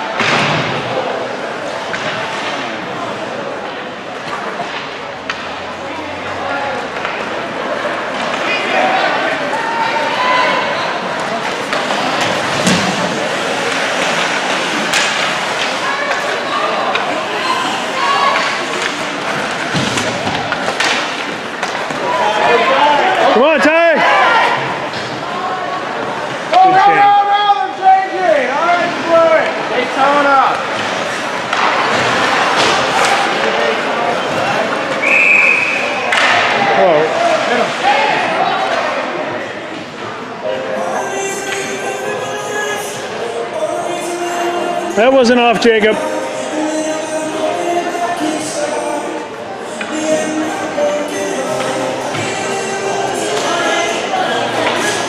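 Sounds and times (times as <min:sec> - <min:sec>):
spectators talking and shouting: 0:00.0 - 0:55.0
pucks and sticks hitting boards: 0:11.2 - 0:17.2, 0:18.2 - 0:22.6, 0:28.8 - 0:35.1, 0:36.0 - 0:37.8, 0:54.5 - 0:55.0.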